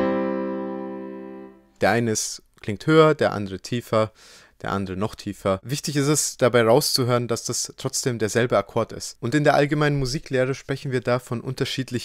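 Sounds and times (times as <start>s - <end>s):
piano chord ringing: 0.0s - 1.6s.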